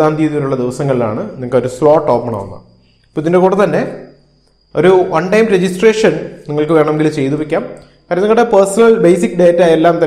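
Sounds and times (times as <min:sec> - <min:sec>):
man speaking: 0:00.0 - 0:04.1.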